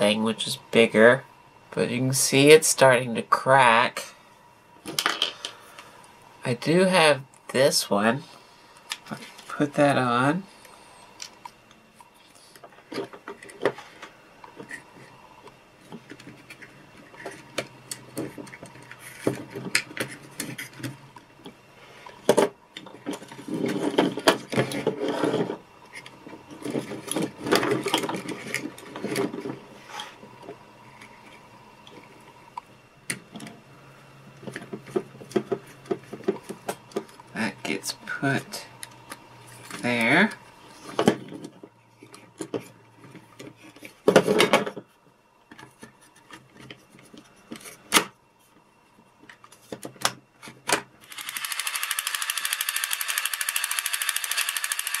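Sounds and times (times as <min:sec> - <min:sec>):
faint steady hum: 0:00.0 - 0:55.0
plastic parts clicking and clattering: 0:12.5 - 0:15.1, 0:15.8 - 0:32.0, 0:49.2 - 0:55.0.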